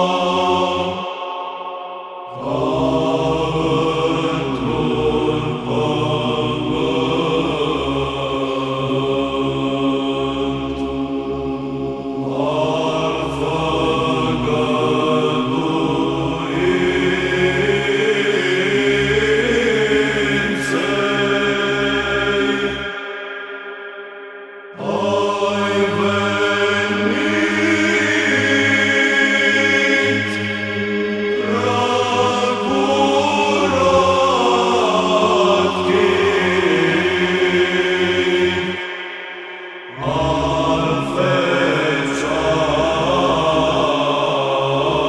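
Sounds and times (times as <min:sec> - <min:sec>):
a cappella chant singing: 0:00.0 - 0:45.0.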